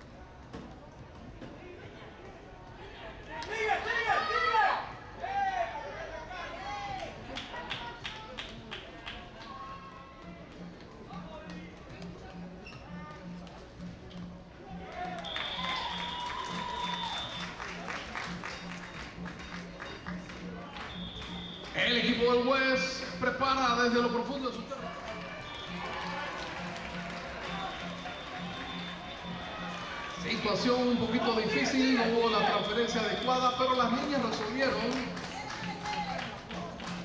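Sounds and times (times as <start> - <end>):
loud shouting voices: 3.4 - 7.2, 24.6 - 33.9.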